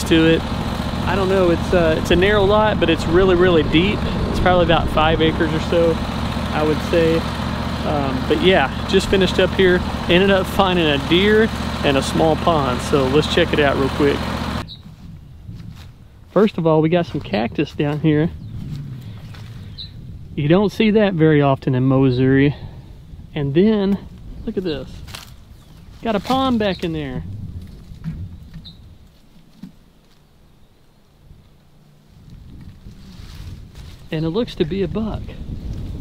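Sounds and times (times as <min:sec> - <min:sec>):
engine idling: 0:00.0 - 0:14.8
low rumble: 0:00.0 - 0:29.1
faint rustling: 0:32.0 - 0:34.2.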